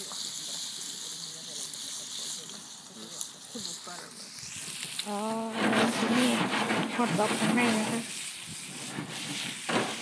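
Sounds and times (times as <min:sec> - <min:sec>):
food sizzling in a pan: 0:00.0 - 0:10.0.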